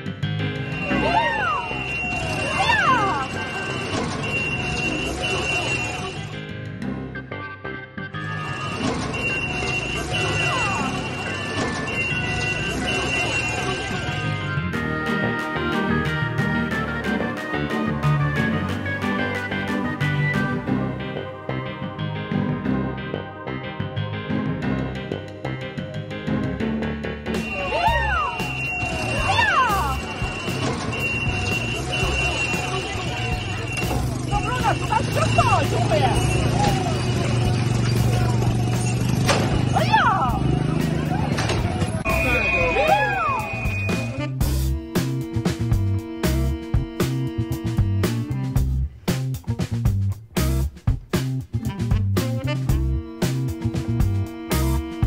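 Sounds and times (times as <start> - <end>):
street sound: 0.0 - 55.0
high-pitched alarm tone: 0.6 - 6.3, 8.2 - 14.4, 27.4 - 40.6, 42.0 - 44.4
wailing human cries: 0.9 - 1.8, 27.6 - 28.5, 42.6 - 43.5
background music with low beat: 42.0 - 55.0.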